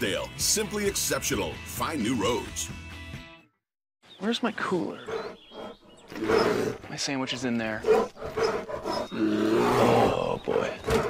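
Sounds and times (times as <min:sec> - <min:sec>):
bear roaring: 0:05.0 - 0:07.0, 0:07.8 - 0:11.0.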